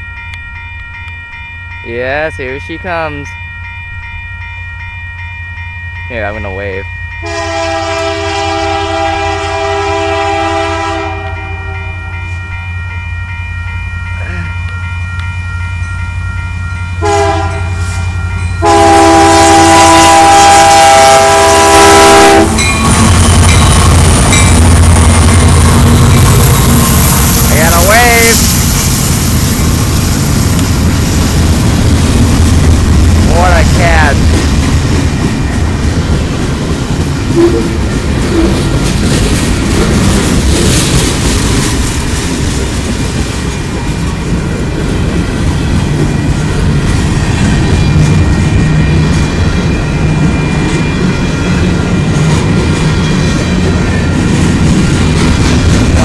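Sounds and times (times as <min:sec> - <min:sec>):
crossing bell ringing: 0:00.0 - 0:56.0
locomotive air horn: 0:07.2 - 0:12.1, 0:17.0 - 0:23.2, 0:37.3 - 0:38.5
diesel locomotive rumble: 0:14.1 - 0:56.0.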